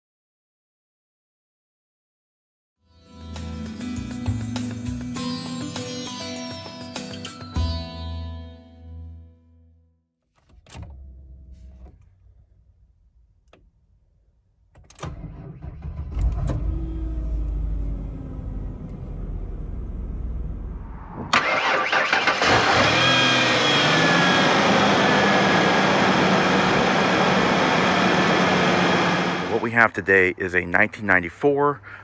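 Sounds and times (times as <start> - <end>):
car engine cranking and idling: 14.8 - 29.7
faint engine whir: 15.0 - 29.7.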